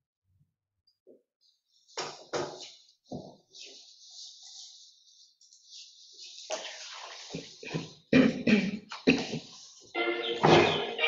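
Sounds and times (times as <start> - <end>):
phone ringtone melody: 10.0 - 11.0.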